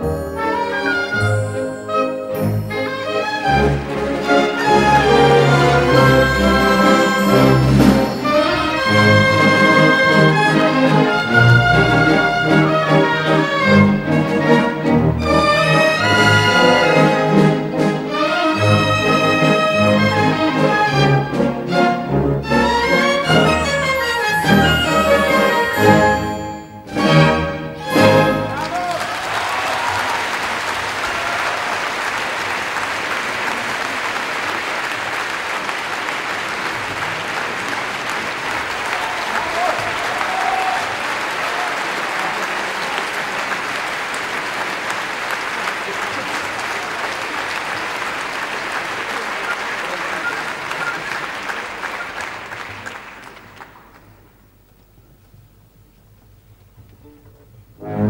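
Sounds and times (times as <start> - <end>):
orchestra playing loud chords: 0.0 - 29.1, 57.8 - 58.0
audience applause: 2.9 - 21.4, 27.9 - 54.4.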